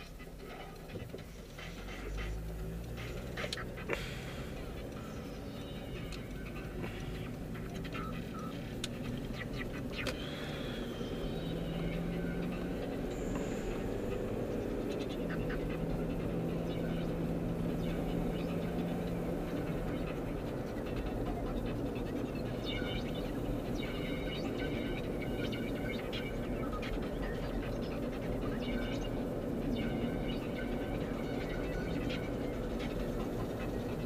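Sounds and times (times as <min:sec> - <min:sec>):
faint clicks and ticks: 0:00.0 - 0:10.2
car engine hum: 0:00.0 - 0:34.0
road noise: 0:00.0 - 0:34.0.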